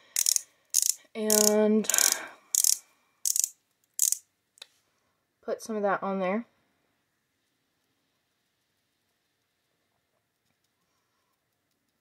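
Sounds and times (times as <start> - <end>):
twist-up stick ratchet clicking: 0.0 - 4.2.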